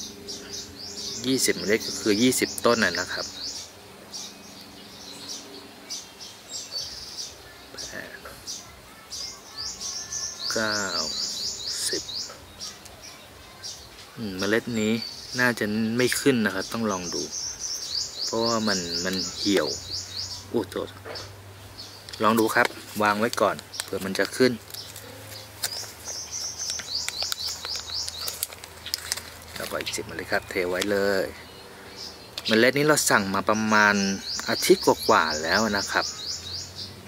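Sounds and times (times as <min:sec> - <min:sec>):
small bird chirping: 0:00.0 - 0:37.0.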